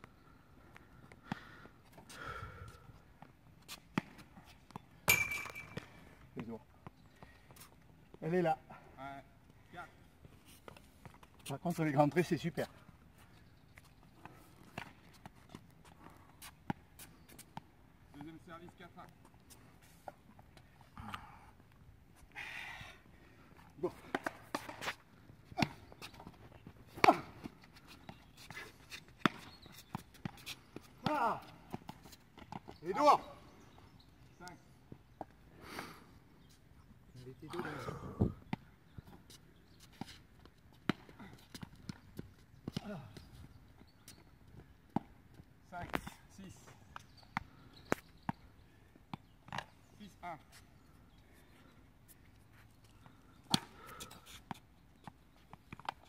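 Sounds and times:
ball being struck: 5.1 - 5.8.

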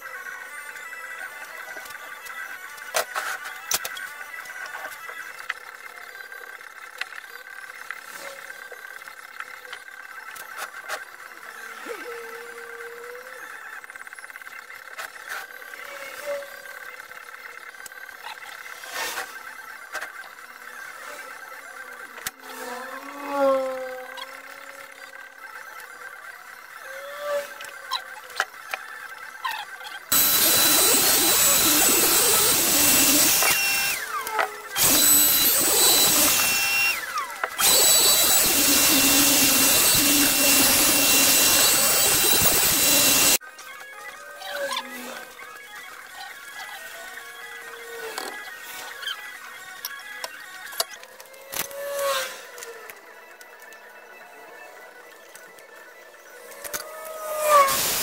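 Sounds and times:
electric machine rushing noise: 0.0 - 58.0.

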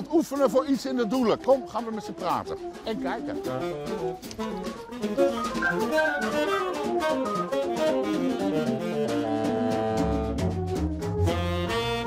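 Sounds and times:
drums: 0.0 - 12.0
fast organ runs: 4.9 - 8.4.

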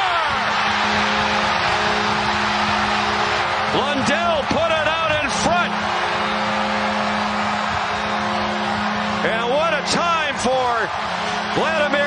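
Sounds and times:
arena crowd cheering: 0.0 - 12.0
goal horn chord: 0.5 - 12.0.

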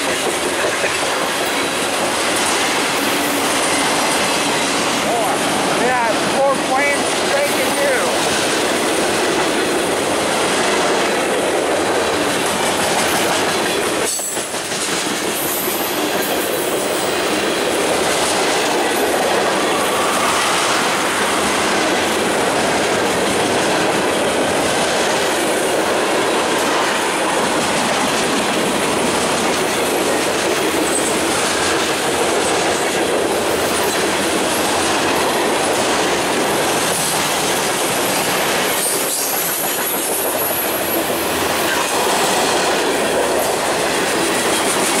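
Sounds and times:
freight train rolling past: 0.0 - 45.0.

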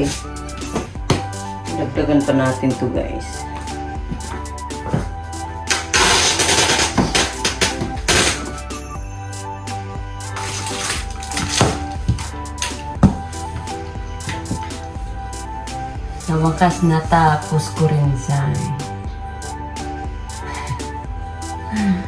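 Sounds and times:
background music: 0.0 - 22.0
packing tape pulled off roll: 5.7 - 8.6, 10.3 - 12.0.

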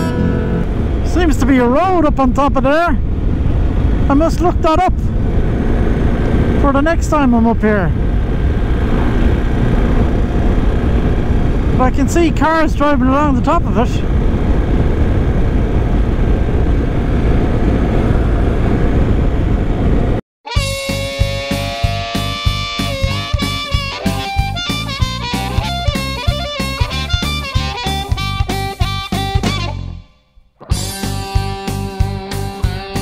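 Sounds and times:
background music with guitar and beat: 0.0 - 0.7, 20.5 - 33.0
motorcycle riding at speed: 0.0 - 1.6, 3.0 - 20.2, 20.8 - 29.6
wind rush: 0.0 - 20.2.

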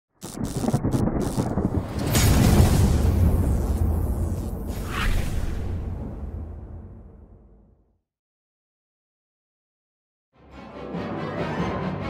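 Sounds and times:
thunder rumbling: 0.2 - 7.3.

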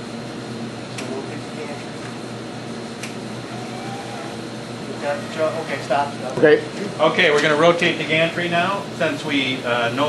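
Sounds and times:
machine gantry whirring: 3.1 - 6.3.

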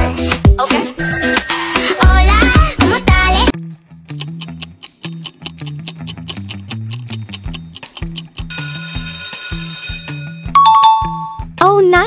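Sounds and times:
clock ticking quickly: 4.1 - 8.5.

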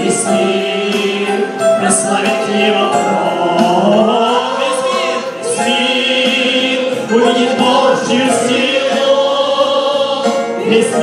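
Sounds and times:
electronic keyboard accompaniment: 0.0 - 11.0
group singing worship song: 0.0 - 11.0.

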